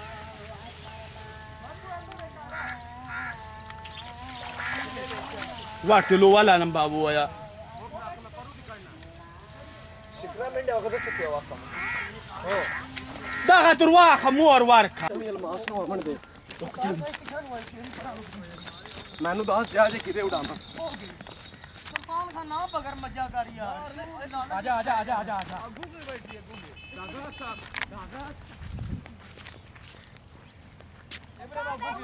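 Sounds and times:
men calling out: 0.0 - 17.2, 17.8 - 28.4, 31.4 - 32.0
running footsteps on dirt: 0.0 - 32.0
bird squawking harshly: 4.5 - 5.2, 10.8 - 14.4.

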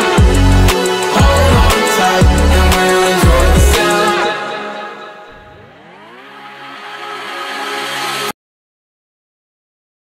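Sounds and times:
low pitched drone gliding upward: 1.2 - 8.3.

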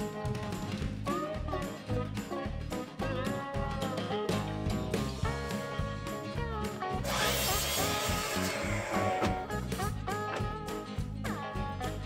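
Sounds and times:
background music with gliding notes: 0.0 - 12.0
miter saw cutting wood: 7.0 - 9.4.

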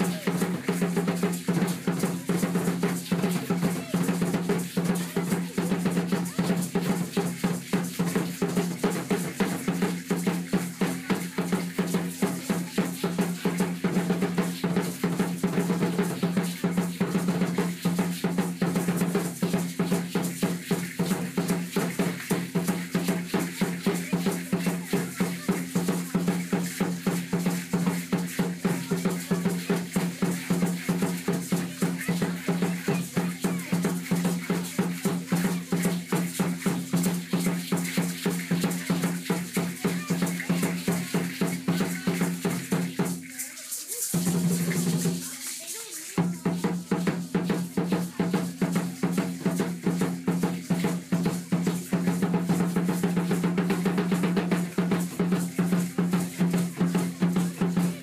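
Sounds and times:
upright wooden drum beating: 0.0 - 58.0.

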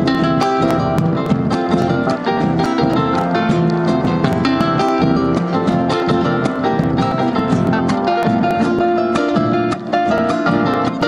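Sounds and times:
acoustic guitar: 0.0 - 11.0
harp playing: 0.0 - 11.0.

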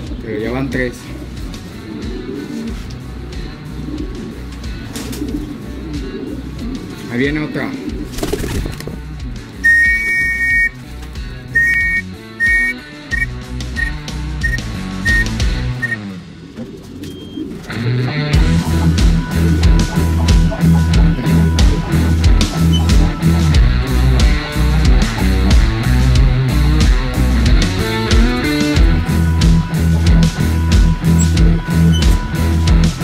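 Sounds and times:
rock music: 0.0 - 33.0
hand whistle blasts: 9.6 - 10.8, 11.6 - 16.0.

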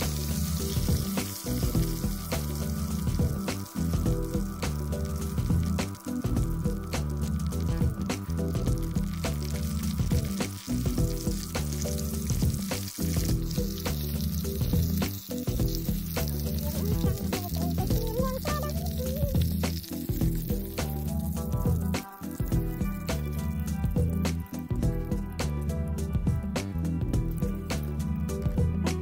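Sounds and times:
meat sizzling in oil: 0.0 - 26.1
background music with bass line: 0.0 - 29.0.

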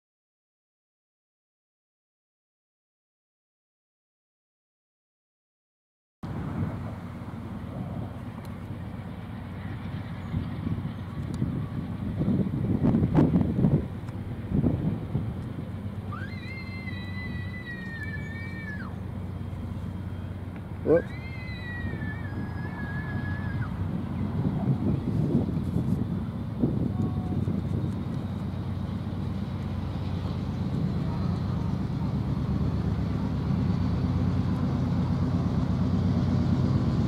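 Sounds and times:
low rumble of train: 6.2 - 37.0.

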